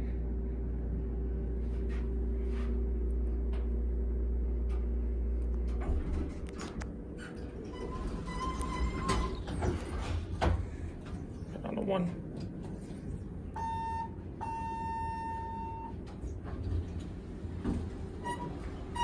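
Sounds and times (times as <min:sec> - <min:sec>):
elevator low hum: 0:00.0 - 0:19.0
elevator doors sliding open: 0:04.6 - 0:11.4, 0:12.2 - 0:19.0.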